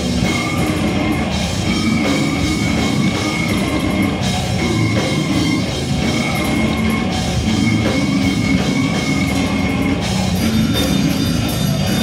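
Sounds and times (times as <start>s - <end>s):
bass: 0.0s - 12.0s
distorted electric guitars: 0.0s - 12.0s
drum kit: 0.0s - 12.0s.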